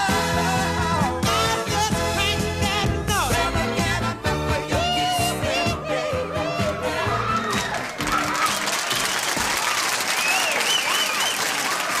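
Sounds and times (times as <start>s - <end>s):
band music: 0.0s - 9.0s
audience applauding: 7.4s - 12.0s.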